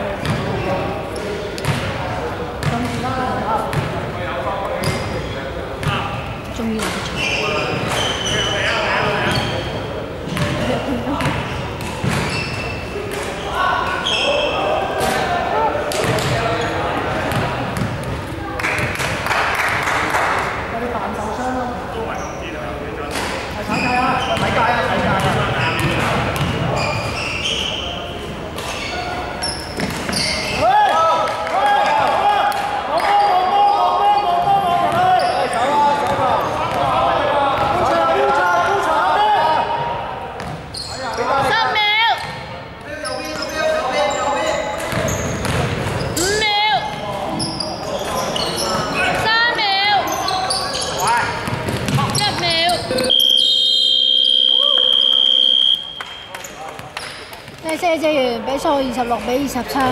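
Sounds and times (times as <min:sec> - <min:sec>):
basketball bouncing: 0:00.2 - 0:00.5, 0:01.6 - 0:01.9, 0:03.7 - 0:04.0, 0:10.3 - 0:12.4, 0:17.3 - 0:18.2, 0:24.4 - 0:26.7, 0:44.9 - 0:46.0, 0:51.4 - 0:52.7
shoes squeaking on court floor: 0:04.7 - 0:06.1, 0:06.7 - 0:14.7, 0:15.9 - 0:18.9, 0:23.2 - 0:30.7, 0:34.5 - 0:36.9, 0:40.4 - 0:49.3, 0:50.0 - 0:57.8
players shouting: 0:30.1 - 0:40.4.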